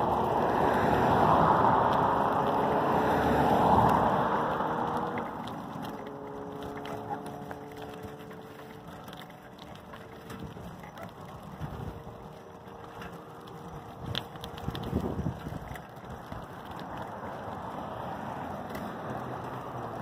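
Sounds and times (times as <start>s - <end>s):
traffic close by: 0.0s - 20.0s
wind and road noise: 0.0s - 20.0s.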